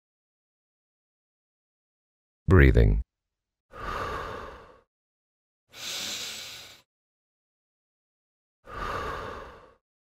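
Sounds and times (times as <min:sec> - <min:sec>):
person breathing out through mouth: 0:05.8 - 0:06.8, 0:08.7 - 0:09.8.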